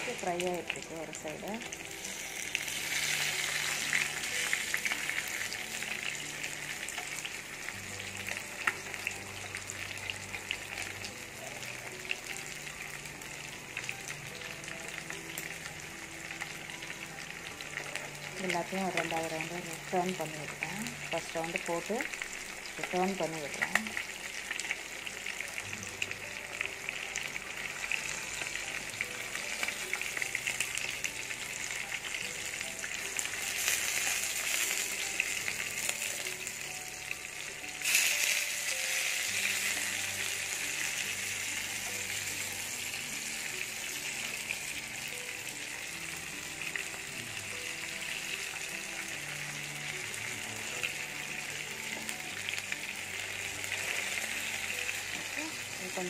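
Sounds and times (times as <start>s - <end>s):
fish sizzling in oil: 0.0s - 56.0s.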